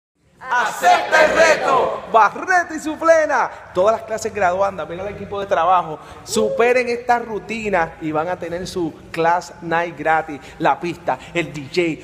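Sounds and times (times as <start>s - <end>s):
group of people shouting: 0.4s - 2.0s.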